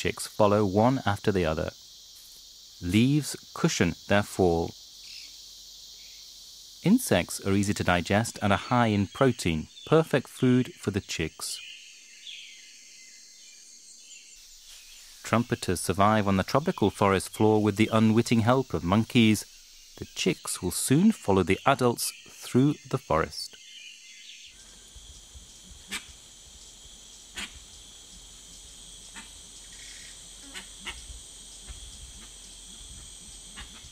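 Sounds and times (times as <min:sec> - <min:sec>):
insects buzzing: 0:00.0 - 0:33.9.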